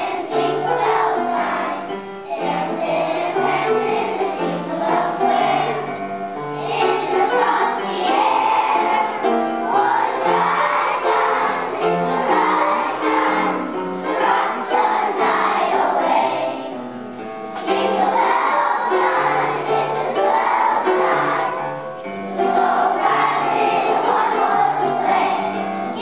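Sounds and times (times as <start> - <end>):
children's choir singing: 0.0 - 26.0.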